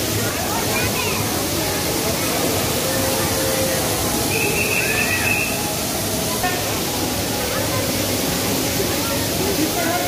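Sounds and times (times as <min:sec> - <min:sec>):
people talking: 0:00.0 - 0:10.0
waterfall rushing hiss: 0:00.0 - 0:10.0.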